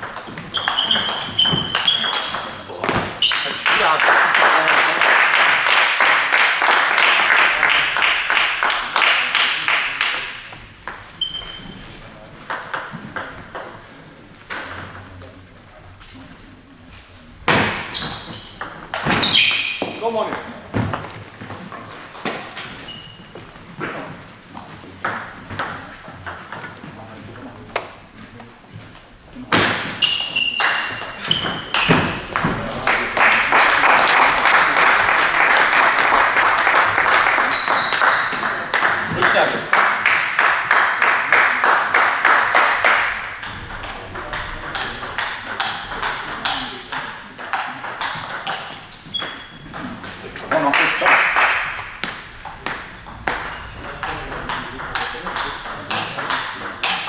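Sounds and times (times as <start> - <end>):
crowd clapping: 3.3 - 10.4, 32.3 - 43.5, 50.6 - 52.8.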